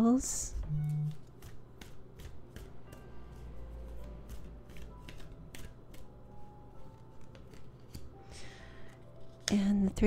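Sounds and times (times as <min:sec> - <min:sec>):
cards being shuffled: 0:00.9 - 0:03.4, 0:04.0 - 0:06.2, 0:06.8 - 0:09.7.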